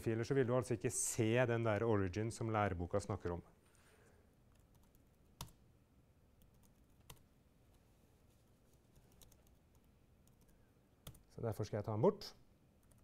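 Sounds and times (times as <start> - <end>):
computer keyboard keystrokes: 9.0 - 11.3.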